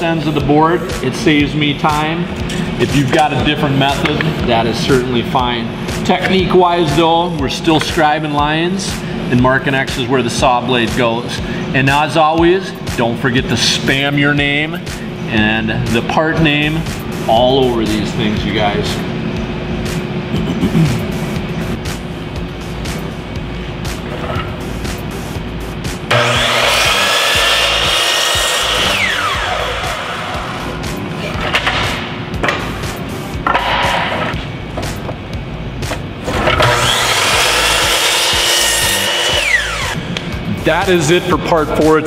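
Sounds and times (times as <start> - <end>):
background music: 0.0 - 42.0
miter saw cutting wood: 26.1 - 30.8, 36.3 - 40.1.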